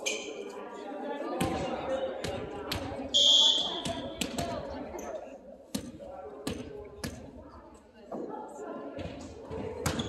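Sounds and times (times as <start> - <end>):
volleyball bouncing on gym floor: 1.4 - 3.0, 3.8 - 4.7, 5.7 - 7.3, 9.0 - 10.0.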